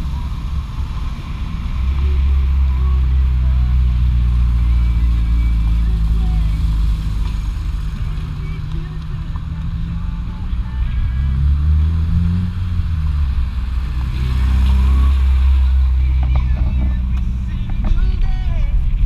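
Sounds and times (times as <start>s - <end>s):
car engine droning: 0.0s - 19.0s
road noise: 0.0s - 19.0s.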